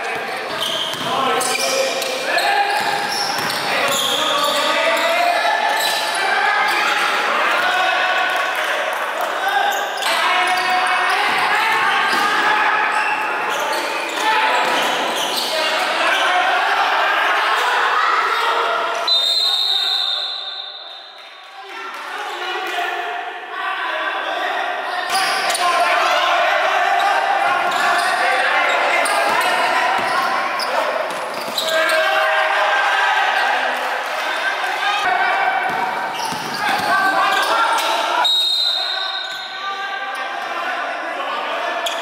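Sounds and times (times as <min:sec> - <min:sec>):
basketball bouncing on wooden court: 0:00.4 - 0:01.1, 0:29.2 - 0:30.2, 0:35.7 - 0:37.1
people calling out: 0:22.3 - 0:42.0.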